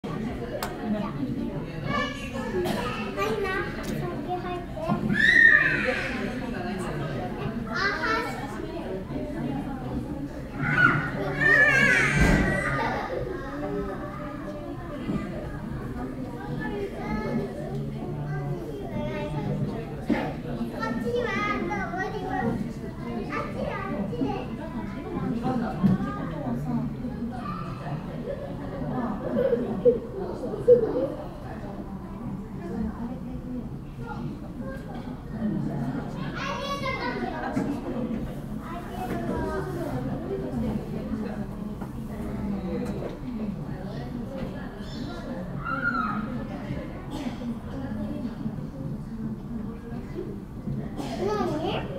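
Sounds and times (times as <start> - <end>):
children chattering: 0.0 - 51.9
murmur of voices: 0.0 - 51.9.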